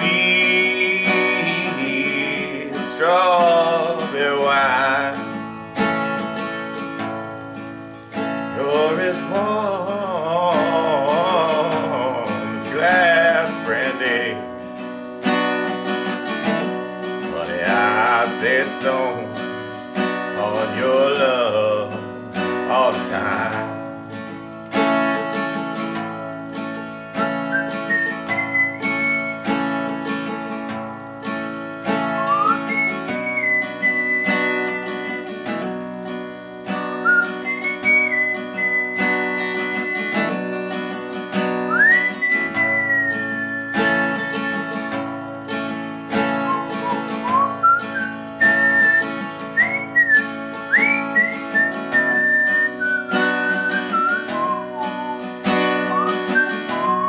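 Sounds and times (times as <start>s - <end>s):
acoustic guitar strumming: 0.0s - 57.0s
person whistling melody: 27.1s - 29.6s, 32.0s - 35.5s, 36.7s - 40.9s, 41.5s - 45.0s, 46.3s - 57.0s.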